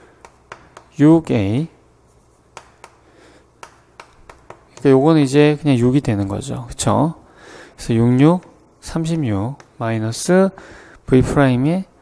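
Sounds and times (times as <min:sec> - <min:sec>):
chalk tapping on chalkboard: 0:00.0 - 0:05.3
chalk scratching: 0:02.0 - 0:03.0.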